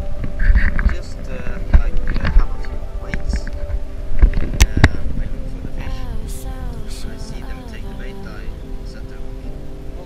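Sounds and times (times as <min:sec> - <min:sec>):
low rumble: 0:00.0 - 0:10.0
steady background tones: 0:00.0 - 0:10.0.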